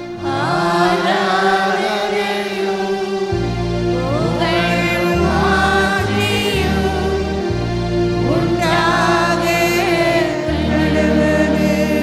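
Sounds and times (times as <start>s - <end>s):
person singing a hymn: 0.0s - 12.0s
sustained keyboard chords: 0.0s - 12.0s.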